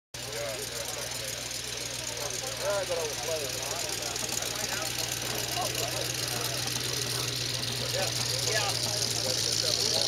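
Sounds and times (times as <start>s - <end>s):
engine idling: 0.2s - 10.0s
faint talking voices: 0.2s - 10.0s.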